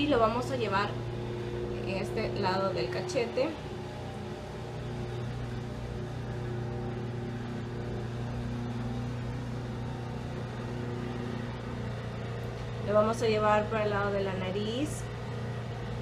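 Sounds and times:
low mechanical hum: 0.0s - 16.0s.

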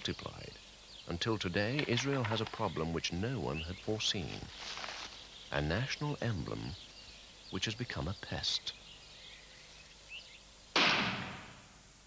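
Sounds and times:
rifle shot: 10.8s - 11.7s.

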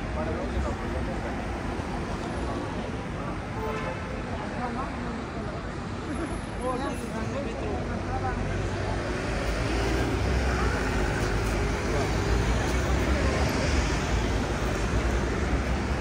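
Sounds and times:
faint voices of passers-by: 0.0s - 16.0s
passing cars and buses: 0.0s - 16.0s.

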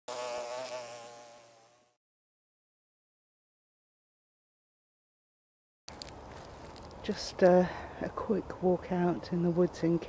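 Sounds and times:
bee buzzing: 0.1s - 2.0s.

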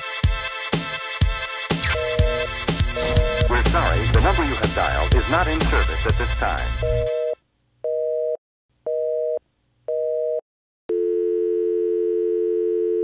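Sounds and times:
telephone busy signal: 2.0s - 3.6s, 6.8s - 8.4s, 10.0s - 13.0s
telephone dial tone: 10.0s - 13.0s.

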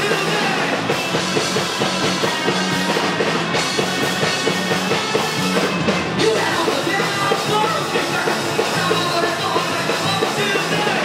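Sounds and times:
bass guitar: 0.0s - 11.0s
drum kit beat: 0.0s - 11.0s
electric guitar: 0.0s - 11.0s.

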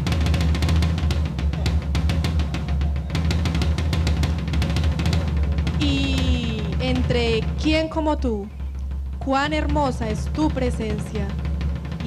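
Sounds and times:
drum roll: 0.0s - 12.0s.

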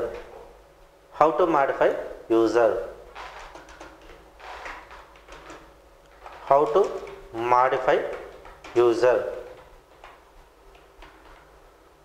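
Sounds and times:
computer keyboard clicks: 3.4s - 4.2s.

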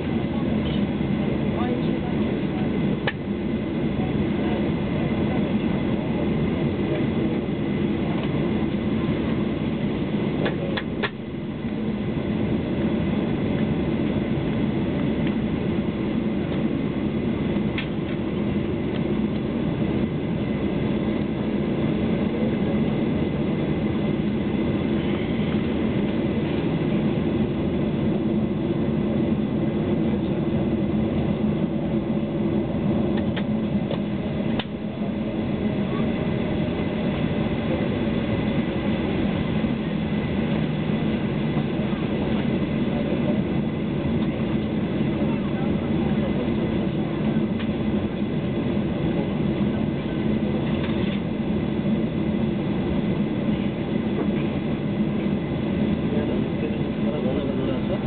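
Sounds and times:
aircraft cabin rumble: 0.0s - 58.0s.

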